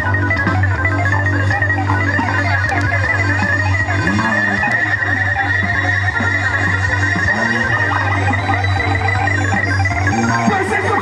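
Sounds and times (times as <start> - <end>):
keyboard-led trio playing: 0.0 - 11.0.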